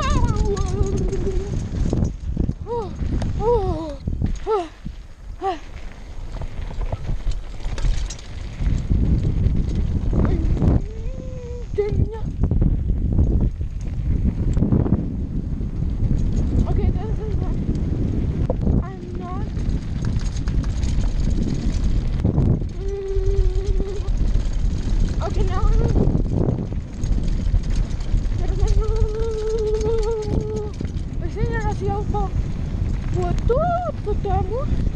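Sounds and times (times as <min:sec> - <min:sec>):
bike rattling over rocky ground: 0:00.0 - 0:34.9
wind buffeting microphone: 0:00.0 - 0:34.9.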